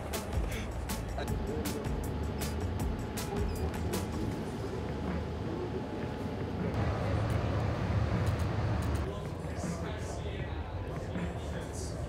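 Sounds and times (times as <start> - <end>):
background chatter: 0.0 - 12.0.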